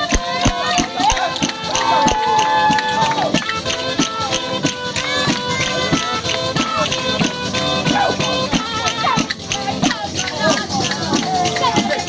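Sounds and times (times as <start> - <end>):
button accordion: 0.0 - 12.0
steady percussive beat: 0.0 - 12.0
folk pipe high note: 0.2 - 10.0.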